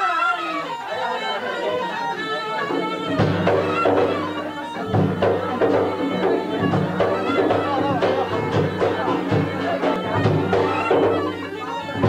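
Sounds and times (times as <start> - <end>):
reedy wind instrument melody: 0.0 - 12.0
regular drumbeats: 1.6 - 12.0.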